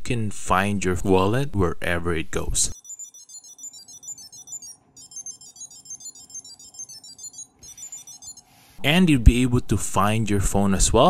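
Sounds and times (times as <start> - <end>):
electronic beeping melody: 2.8 - 8.5.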